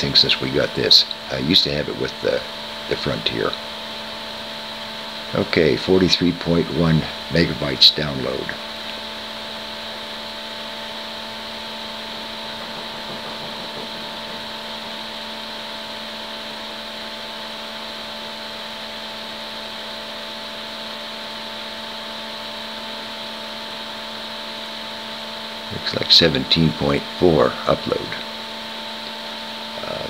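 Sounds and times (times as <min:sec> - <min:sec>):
steady machine hum with hiss: 0:00.0 - 0:30.0.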